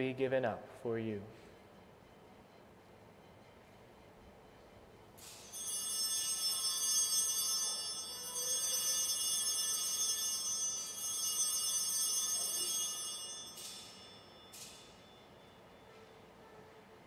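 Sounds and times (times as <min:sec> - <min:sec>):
altar bells ringing: 0:05.4 - 0:15.9.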